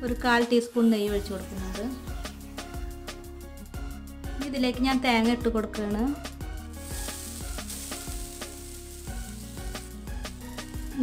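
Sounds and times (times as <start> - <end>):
faint background music: 0.0 - 11.0
coconut sizzling in hot fat: 6.1 - 11.0.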